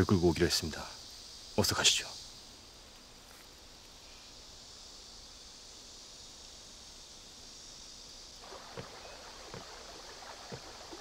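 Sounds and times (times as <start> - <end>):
insects chirring: 0.0 - 11.0
small water splashes: 8.4 - 11.0
water lapping: 8.4 - 11.0.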